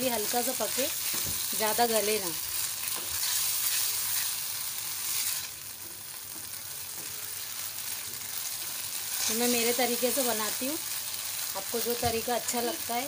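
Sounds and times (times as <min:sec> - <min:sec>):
vegetables sizzling in a pan: 0:00.0 - 0:13.0.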